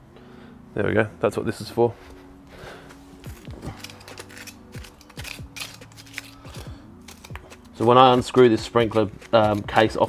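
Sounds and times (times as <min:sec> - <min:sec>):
soft background music: 0:00.0 - 0:10.0
metal rod scraping in soil: 0:03.2 - 0:10.0.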